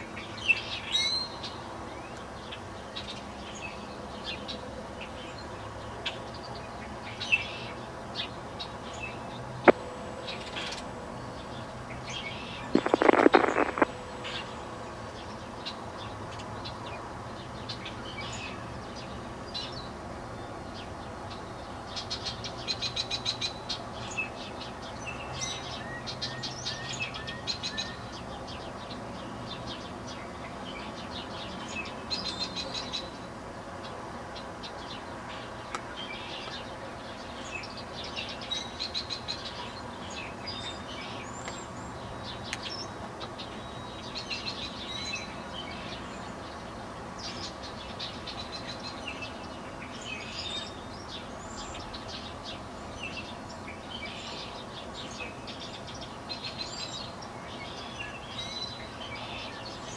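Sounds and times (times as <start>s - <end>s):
small birds chirping: 0.0s - 59.9s
steady low hum: 9.1s - 15.6s.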